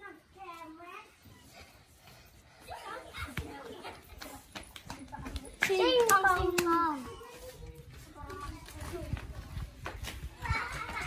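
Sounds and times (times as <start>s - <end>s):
children running on dirt: 1.4s - 11.0s.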